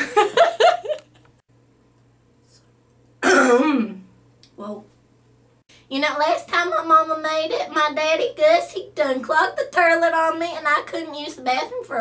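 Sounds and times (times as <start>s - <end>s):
woman clearing her throat: 3.2s - 4.1s.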